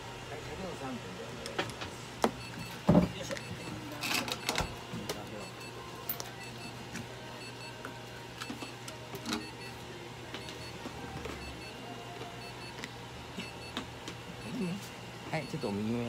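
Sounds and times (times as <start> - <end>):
electrical hum: 0.0 - 16.0
high electronic beeps: 11.4 - 11.8, 12.4 - 12.7, 14.4 - 15.9.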